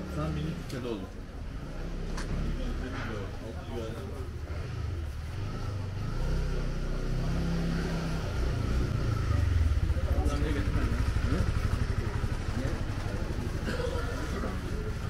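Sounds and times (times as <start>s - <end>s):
voices of passers-by: 0.0s - 15.0s
small motorcycle engine running: 1.4s - 3.0s, 3.8s - 15.0s.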